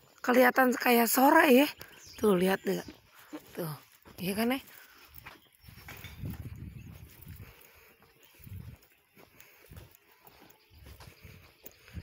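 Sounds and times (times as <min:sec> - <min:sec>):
footsteps on stone paving: 0:01.7 - 0:12.0.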